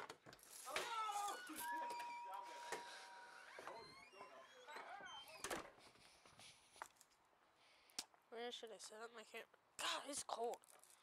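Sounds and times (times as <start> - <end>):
steady high tone: 1.3 - 4.5.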